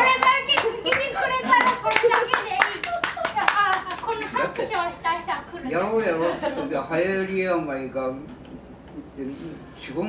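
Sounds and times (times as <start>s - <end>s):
audience clapping: 0.0s - 4.8s
people talking: 0.0s - 7.7s
people laughing: 6.0s - 6.8s.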